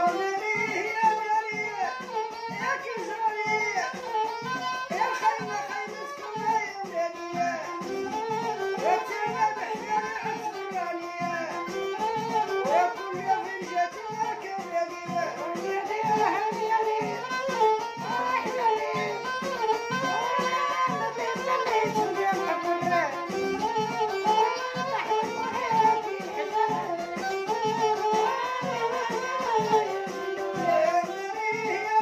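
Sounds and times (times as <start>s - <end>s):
steady percussion beat: 0.0s - 32.0s
violin melody with slides: 0.0s - 32.0s.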